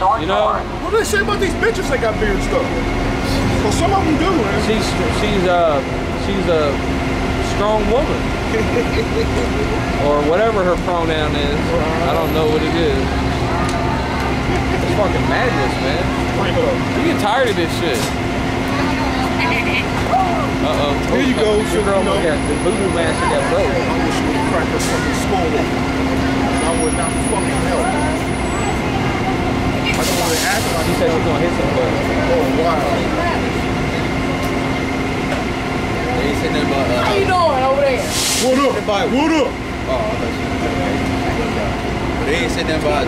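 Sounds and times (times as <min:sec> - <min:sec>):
faint voices: 0:00.0 - 0:43.0
traffic rumble and engine hum: 0:00.0 - 0:43.0.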